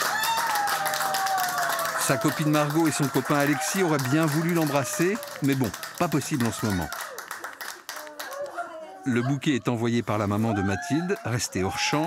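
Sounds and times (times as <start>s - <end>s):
people clapping hands: 0.0s - 8.8s, 10.6s - 12.0s.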